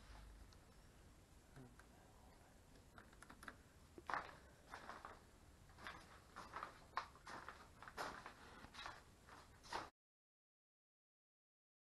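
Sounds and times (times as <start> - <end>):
faint scuffs and rustles: 5.8 - 9.9.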